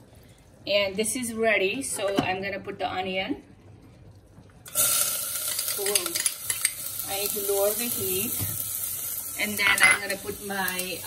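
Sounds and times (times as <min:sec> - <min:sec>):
onion sizzling in hot oil: 0:04.6 - 0:11.0.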